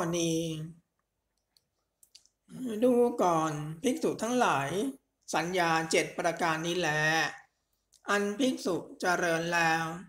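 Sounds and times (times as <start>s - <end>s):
person reciting: 0.0s - 0.8s, 2.5s - 10.0s.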